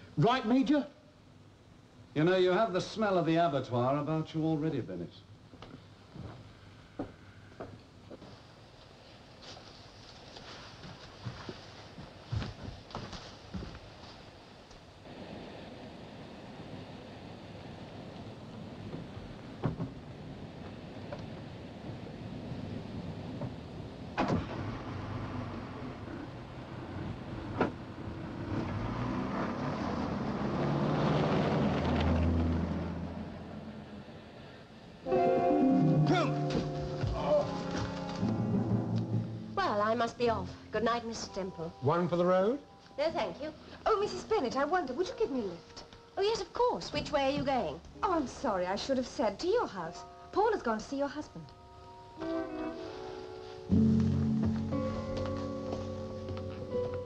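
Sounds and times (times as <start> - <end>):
car doors shutting: 24.2 - 25.3.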